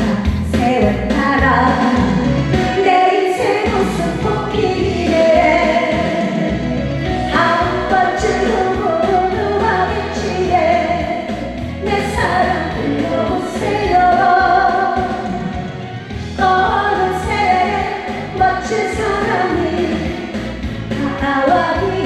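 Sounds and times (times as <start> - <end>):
woman singing into a microphone: 0.0 - 6.6, 7.2 - 15.6, 16.4 - 22.0
backing track with steady beat: 0.0 - 22.0.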